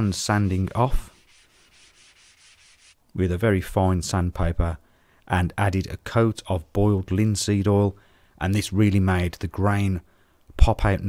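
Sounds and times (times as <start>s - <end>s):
sandpaper rubbing on wood: 0.7s - 3.0s.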